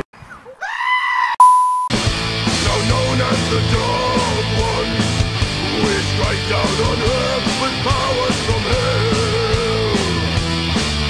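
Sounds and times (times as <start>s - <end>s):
electronic beep tone: 1.4s - 1.9s.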